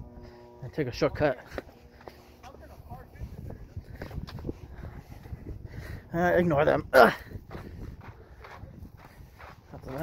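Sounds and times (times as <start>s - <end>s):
low steady rumble: 0.0s - 9.9s.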